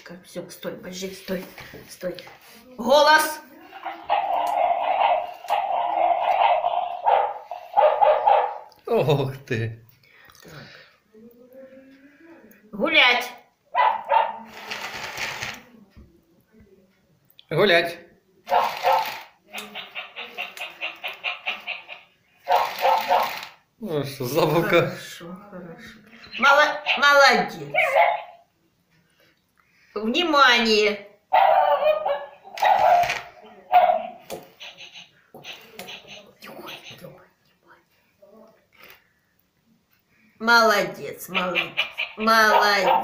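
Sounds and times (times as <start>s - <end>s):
toy dog barking: 3.8s - 8.7s, 18.4s - 23.6s, 26.4s - 28.4s, 31.3s - 36.9s, 41.3s - 43.0s
toy motor and gears whirring: 14.5s - 15.6s, 18.5s - 23.6s.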